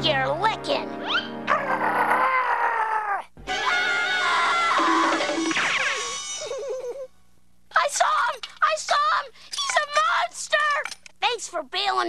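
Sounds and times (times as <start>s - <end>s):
cartoon cat screaming: 1.0s - 6.1s.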